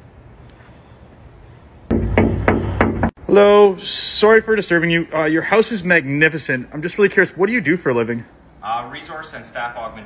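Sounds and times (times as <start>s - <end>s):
knocks on a door: 1.9s - 3.2s.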